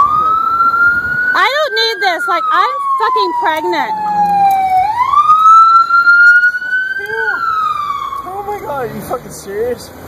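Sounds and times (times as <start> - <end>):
emergency vehicle siren wailing: 0.0 - 8.9.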